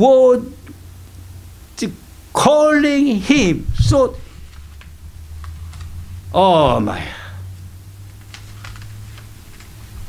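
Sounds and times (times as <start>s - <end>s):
low steady hum: 0.0s - 10.0s
spoken word: 1.8s - 4.2s, 6.3s - 7.4s.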